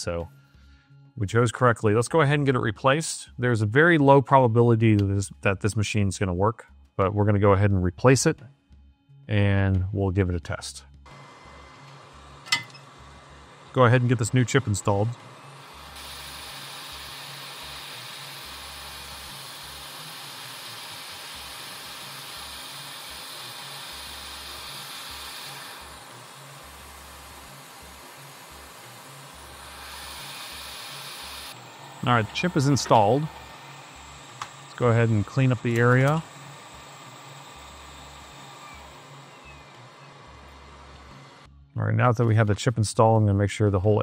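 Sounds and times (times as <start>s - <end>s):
hot air station hissing: 11.1s - 41.5s.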